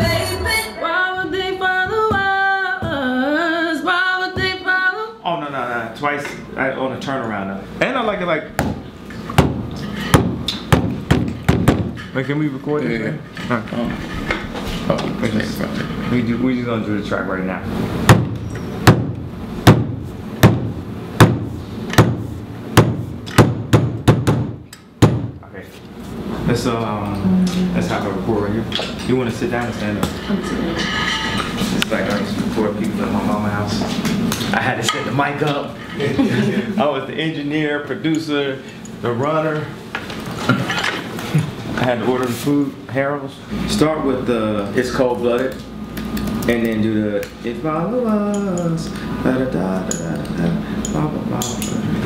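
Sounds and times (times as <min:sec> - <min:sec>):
fist knocking on desk: 0:10.2 - 0:12.0, 0:18.1 - 0:22.2, 0:22.8 - 0:25.4.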